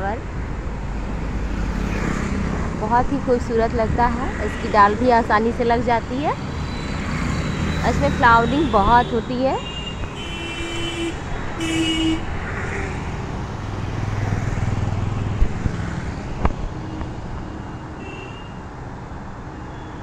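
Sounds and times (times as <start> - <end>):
rumble of passing vehicles: 0.0 - 20.0
vehicle horn toots: 8.4 - 12.3, 18.0 - 18.6.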